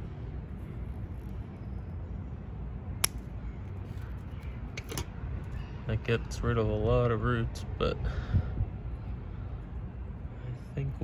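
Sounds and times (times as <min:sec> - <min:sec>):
scissors snipping: 0:03.0 - 0:03.2.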